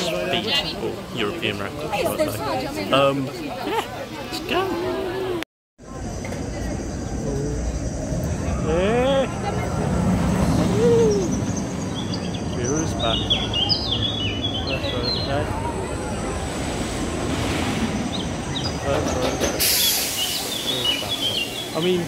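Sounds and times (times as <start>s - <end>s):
roller coaster rumbling on track: 0.0s - 22.0s
birds chirping: 9.4s - 22.0s
brief hiss: 19.5s - 20.7s.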